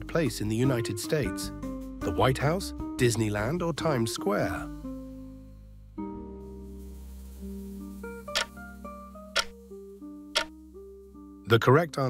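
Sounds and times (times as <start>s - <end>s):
plucked background music: 0.0s - 12.0s.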